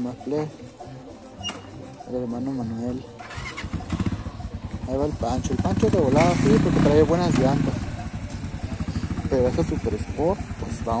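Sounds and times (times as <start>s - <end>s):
motorcycle engine running at low revs: 3.2s - 11.0s.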